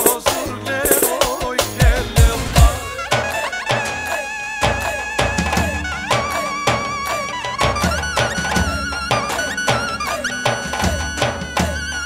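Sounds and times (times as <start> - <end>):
electronic drum kit: 0.0 - 12.0
bass: 0.1 - 3.5, 4.6 - 12.0
violin-like lead melody: 2.7 - 12.0.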